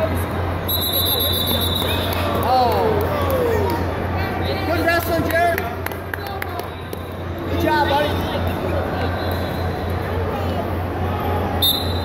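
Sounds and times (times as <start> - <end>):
hall hubbub: 0.0 - 12.0.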